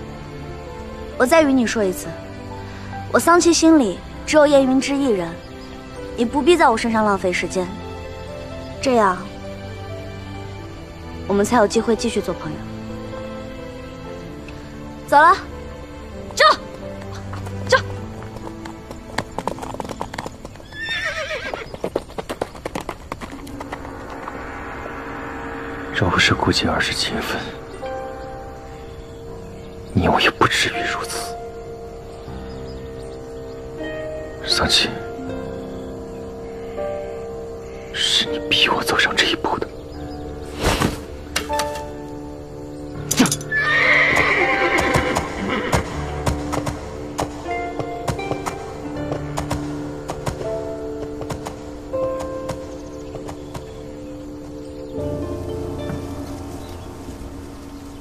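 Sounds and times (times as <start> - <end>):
background music: 0.0 - 58.0
horse hooves clopping: 16.2 - 24.3, 43.2 - 53.8
hoofbeats: 17.0 - 23.9, 43.1 - 53.8
horse whinnying: 20.6 - 21.8, 43.2 - 46.0.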